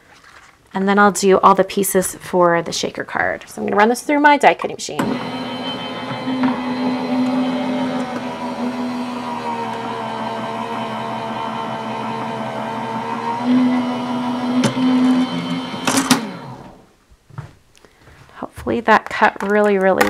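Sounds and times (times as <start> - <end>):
die-cutting machine running: 5.0 - 16.8.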